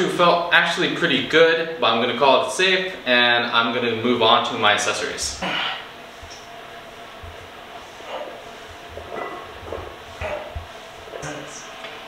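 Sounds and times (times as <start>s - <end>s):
weight plates knocking: 9.0s - 11.3s.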